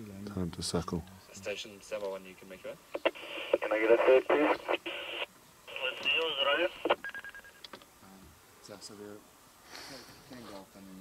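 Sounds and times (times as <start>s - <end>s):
voice over radio speaker: 3.0s - 7.0s.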